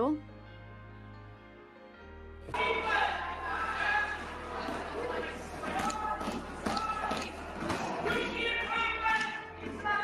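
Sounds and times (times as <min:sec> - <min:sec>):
echoing voices in a chamber: 0:02.5 - 0:10.0.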